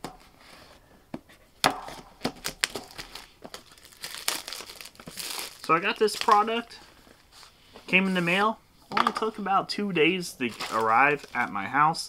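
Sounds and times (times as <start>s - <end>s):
plastic wrap crinkling: 2.2s - 7.3s, 10.4s - 11.6s.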